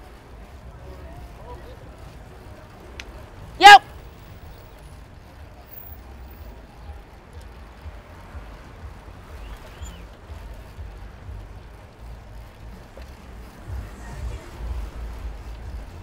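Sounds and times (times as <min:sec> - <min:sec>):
faint passing cars: 0:00.0 - 0:16.0.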